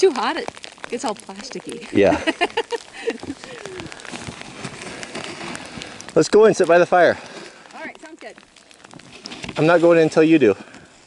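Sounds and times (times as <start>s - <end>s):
snow shovel scraping icy snow: 4.1s - 6.0s, 9.1s - 10.6s.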